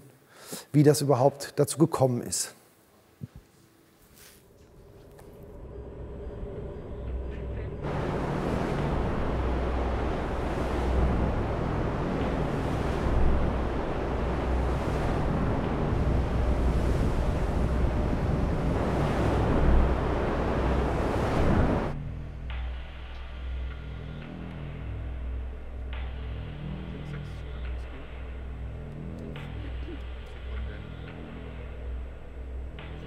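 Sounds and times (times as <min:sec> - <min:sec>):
centrifuge low rumble and rushing: 0:05.4 - 0:33.0.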